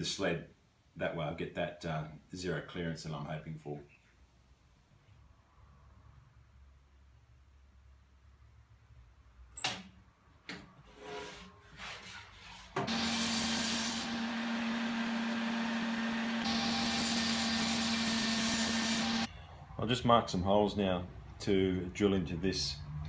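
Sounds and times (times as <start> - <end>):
table saw cutting: 12.8 - 19.3.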